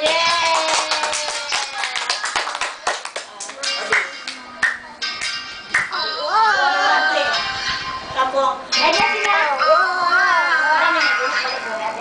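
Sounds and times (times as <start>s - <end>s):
people clapping: 0.0s - 6.0s.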